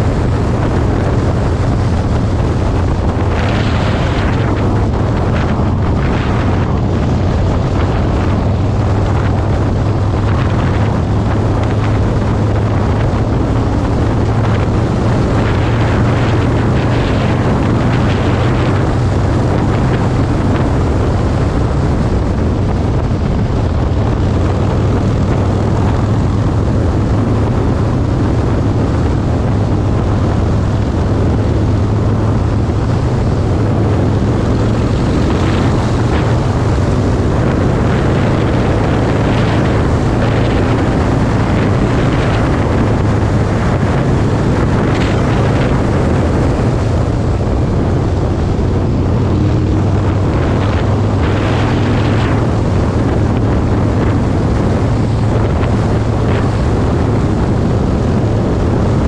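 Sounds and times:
motorcycle engine running: 0.0 - 59.0
wind on microphone: 0.0 - 59.0.

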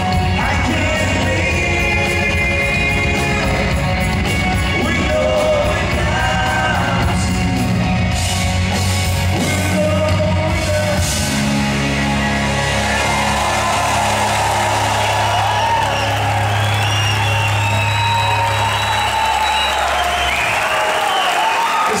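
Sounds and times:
rock band held chord: 0.0 - 21.8
audience cheering and applauding: 11.8 - 22.0.

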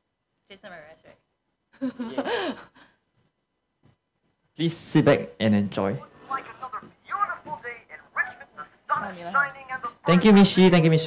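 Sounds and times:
person speaking: 6.0 - 11.0.

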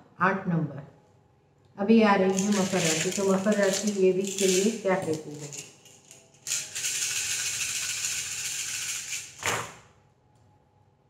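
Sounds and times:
pieces rattling in cupped hands: 2.3 - 9.4
pieces clattering onto table: 2.3 - 9.8.

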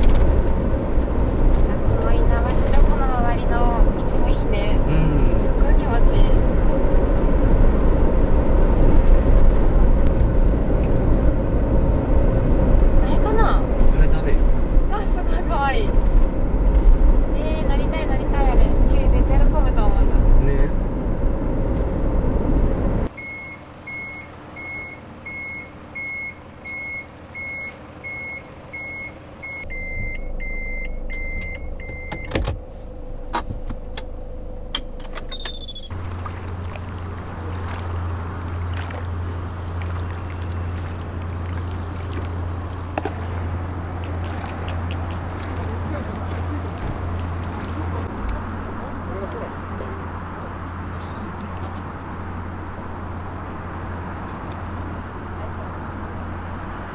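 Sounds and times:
road and engine rumble: 0.0 - 56.9
high electronic beep: 23.2 - 32.3, 35.3 - 35.9
high whistling chirps: 35.3 - 36.0.

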